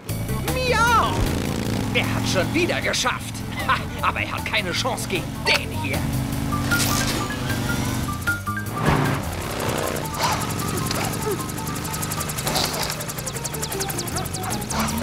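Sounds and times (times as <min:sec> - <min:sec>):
cartoon motorbikes racing: 0:00.0 - 0:15.0
music with stepping melody: 0:03.3 - 0:15.0.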